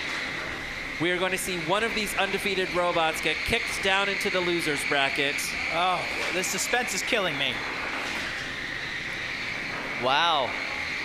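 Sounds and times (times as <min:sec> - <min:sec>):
spinning robot weapon whine: 0:00.0 - 0:11.0.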